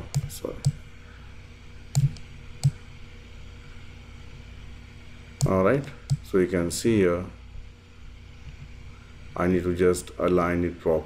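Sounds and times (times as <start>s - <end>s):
computer mouse clicks: 0.0s - 0.8s, 1.9s - 2.8s
low hum: 0.0s - 11.0s.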